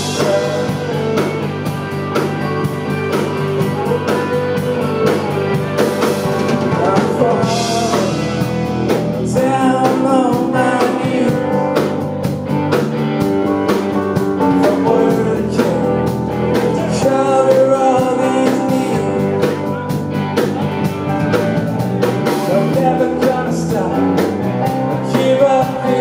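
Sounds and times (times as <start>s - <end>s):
live rock band playing: 0.0s - 26.0s
steady drum beat: 0.0s - 26.0s.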